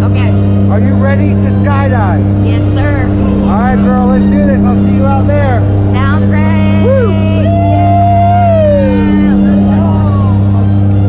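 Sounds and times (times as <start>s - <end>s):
plane engines droning: 0.0s - 11.0s
people calling out: 6.0s - 10.6s.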